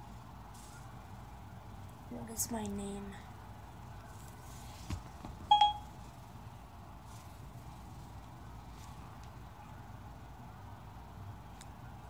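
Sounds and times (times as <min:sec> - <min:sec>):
short electronic beep: 0:05.5 - 0:05.8.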